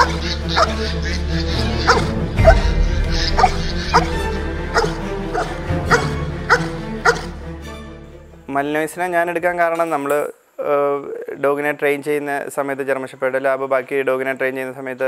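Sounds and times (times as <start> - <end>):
dog barking: 0.0 - 0.8, 1.8 - 2.7, 3.4 - 7.3
background music: 0.0 - 10.3.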